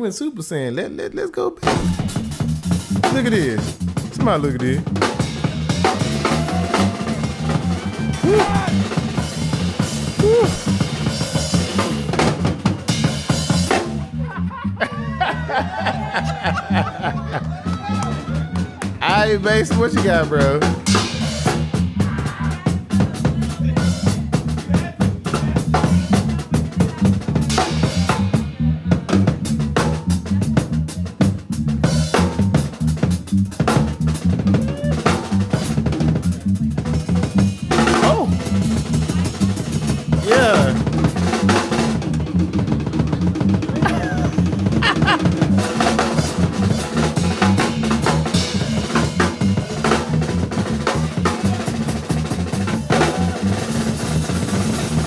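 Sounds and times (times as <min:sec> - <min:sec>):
bass guitar line: 0:01.6 - 0:55.0
drum kit: 0:01.6 - 0:55.0.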